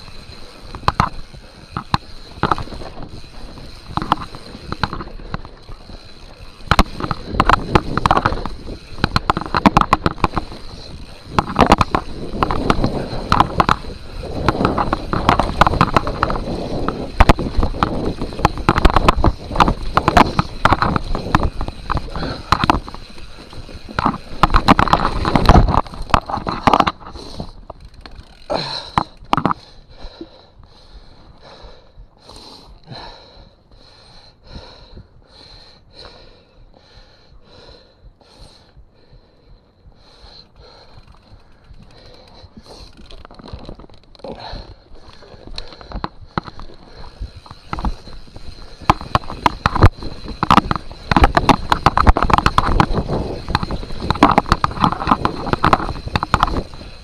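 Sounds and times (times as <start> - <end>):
tyres crunching on dirt: 0.0 - 29.6, 42.6 - 57.0
bike chain and frame rattling: 0.0 - 39.3, 39.9 - 57.0
heavy breathing: 22.0 - 23.6, 28.4 - 43.2, 44.2 - 49.4.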